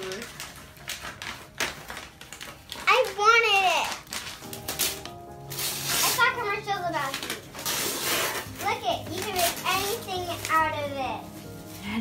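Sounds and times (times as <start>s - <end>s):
wrapping paper tearing: 0.0s - 12.0s.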